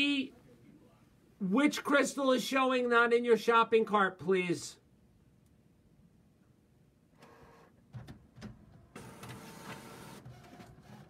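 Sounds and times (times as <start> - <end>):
printer mechanism whirring: 7.2 - 11.0.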